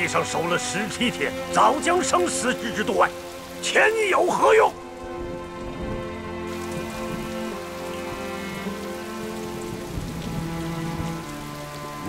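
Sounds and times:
soft music of held notes: 0:00.0 - 0:12.0
steady rain: 0:00.0 - 0:12.0.

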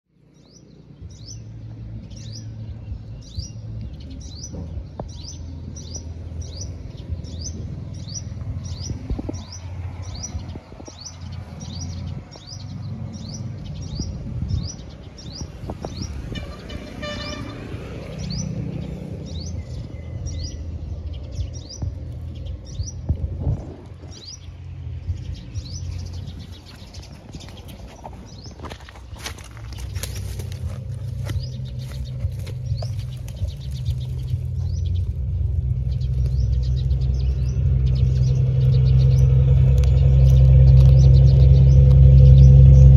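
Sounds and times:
low rumble: 0:00.1 - 0:42.9
bird chirping: 0:00.2 - 0:42.9.

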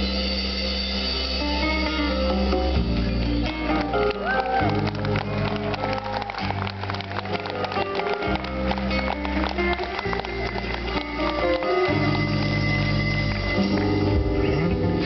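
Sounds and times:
deep bass notes: 0:08.4 - 0:15.0.

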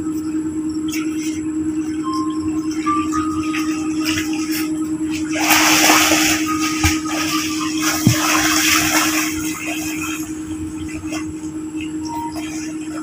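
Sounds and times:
steady low hum: 0:00.0 - 0:13.0
sea water splashing: 0:02.2 - 0:13.0.

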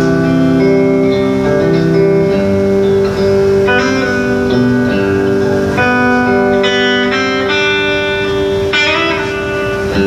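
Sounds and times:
electric guitar chords and notes: 0:00.0 - 0:10.0.

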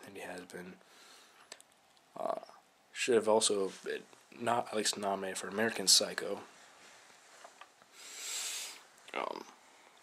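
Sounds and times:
person breathing: 0:00.8 - 0:01.5, 0:07.9 - 0:08.9.

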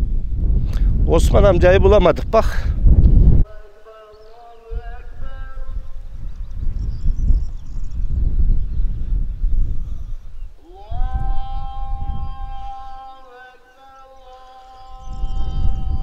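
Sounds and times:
wind buffeting microphone: 0:00.0 - 0:03.5, 0:04.3 - 0:13.4, 0:14.2 - 0:16.0.

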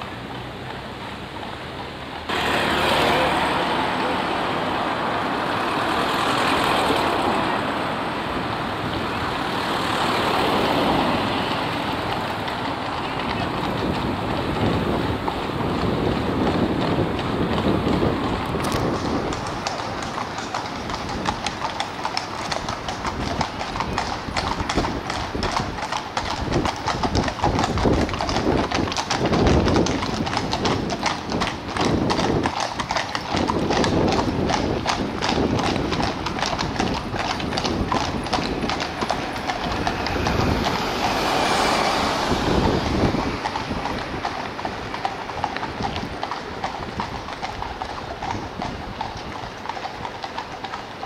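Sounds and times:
horse hooves clip-clopping on road: 0:00.0 - 0:51.0.

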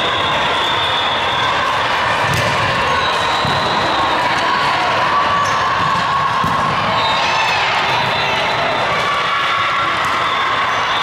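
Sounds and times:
crowd chatter: 0:00.0 - 0:11.0
volleyball hits: 0:02.2 - 0:08.3.

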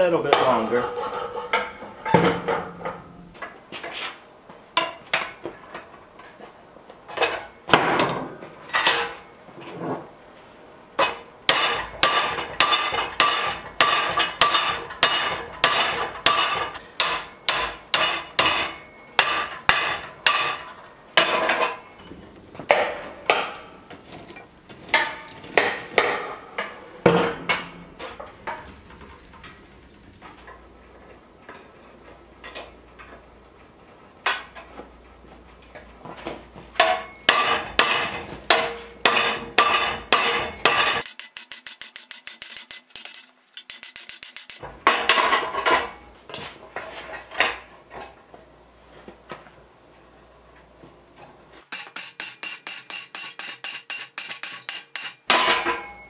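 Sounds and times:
hammer striking hot metal rod: 0:11.0 - 0:21.5, 0:36.8 - 0:45.3, 0:51.7 - 0:56.0.

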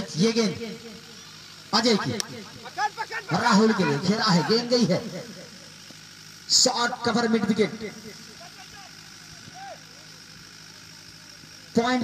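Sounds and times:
low background hum: 0:00.0 - 0:12.0
distant voices of players calling: 0:08.0 - 0:11.7.

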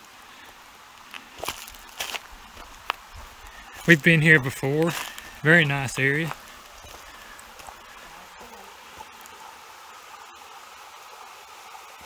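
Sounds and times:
spring water running: 0:00.0 - 0:12.0.

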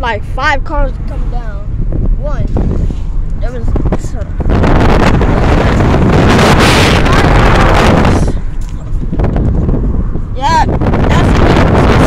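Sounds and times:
car rumble: 0:00.0 - 0:12.0
wind rushing over microphone: 0:00.0 - 0:12.0.

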